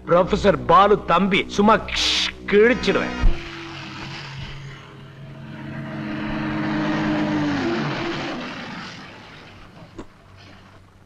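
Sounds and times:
diesel bus engine: 0:02.9 - 0:11.0.

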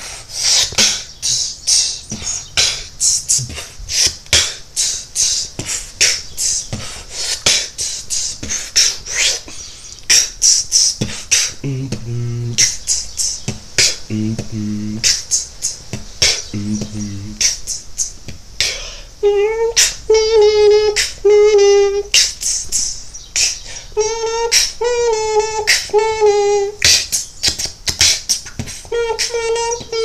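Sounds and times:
beatboxing: 0:00.0 - 0:30.0.

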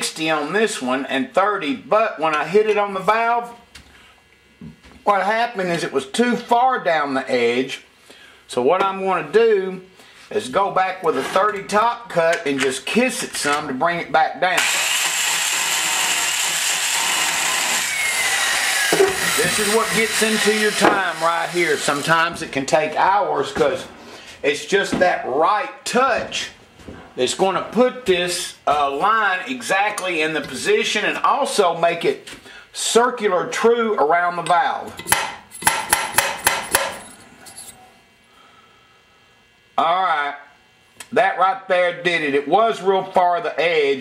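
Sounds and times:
valve seat grinder whirring: 0:14.6 - 0:22.2.

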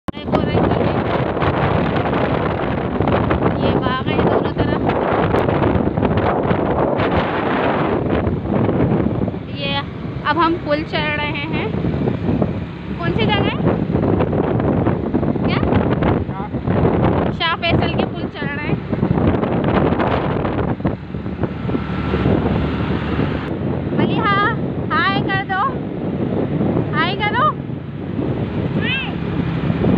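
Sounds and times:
road noise: 0:00.1 - 0:29.9
wind buffeting microphone: 0:00.1 - 0:29.9.

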